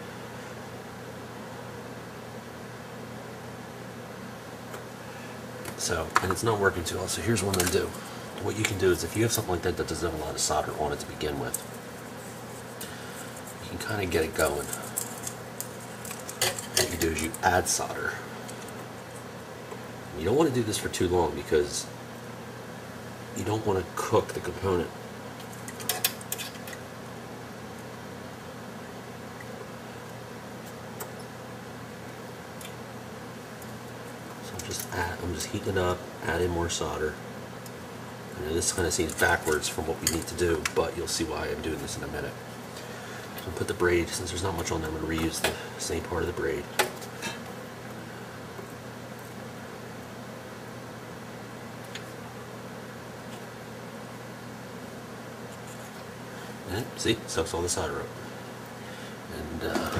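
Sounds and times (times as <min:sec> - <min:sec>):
room tone hum and hiss: 0:00.0 - 0:59.9.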